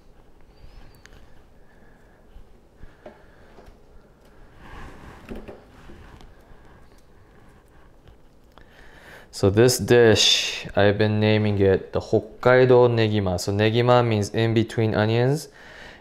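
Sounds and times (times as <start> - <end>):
soft rustle: 0.0 - 8.5.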